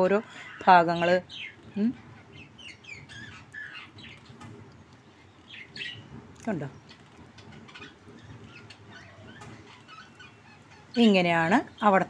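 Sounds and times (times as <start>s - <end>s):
faint bird calls: 0.2s - 11.9s.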